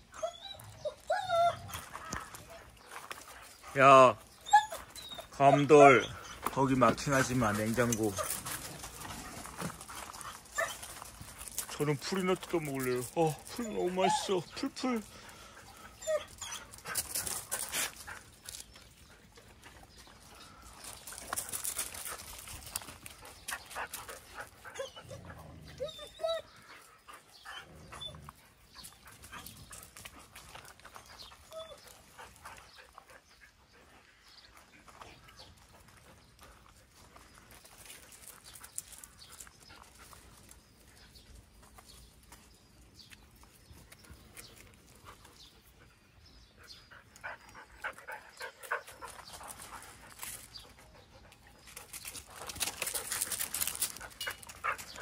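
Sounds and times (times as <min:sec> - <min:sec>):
dogs scuffling on gravel: 0:00.6 - 0:46.0, 0:47.0 - 0:55.0.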